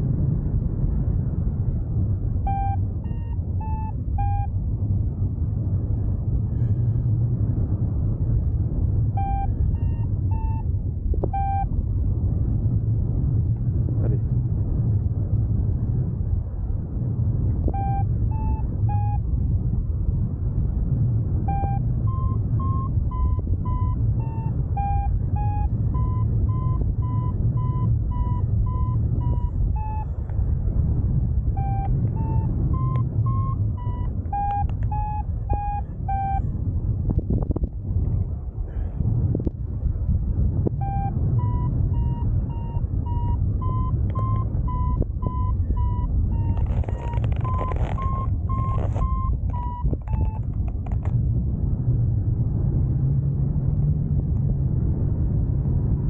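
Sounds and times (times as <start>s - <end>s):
wind rush on microphone: 0.0s - 56.0s
variometer beeping: 2.4s - 4.6s, 9.0s - 11.8s, 17.6s - 19.3s, 21.4s - 30.2s, 31.4s - 36.4s, 40.7s - 51.0s.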